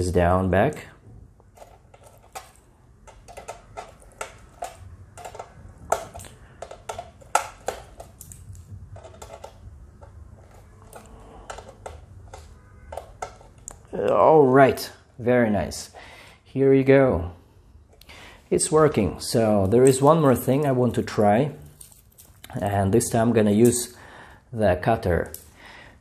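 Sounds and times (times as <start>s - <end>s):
metal links rattling: 21.6s - 22.6s.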